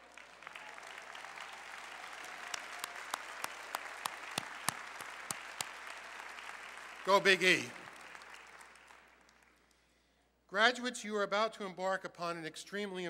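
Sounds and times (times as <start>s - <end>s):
nearby hands clapping: 0.0s - 9.7s
large audience applauding: 0.0s - 9.8s.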